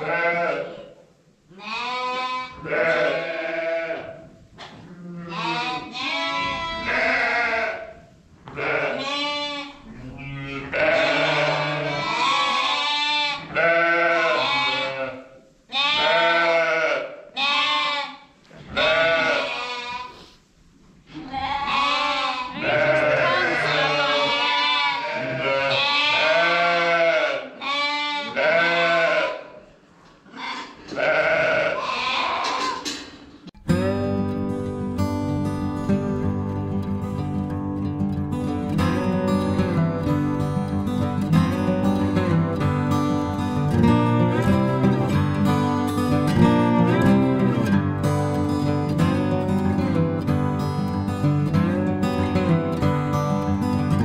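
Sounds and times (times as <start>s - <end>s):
lambs bleating: 0.0s - 0.9s, 1.6s - 4.2s, 4.9s - 20.3s, 21.1s - 29.5s, 30.3s - 32.9s, 46.3s - 47.7s.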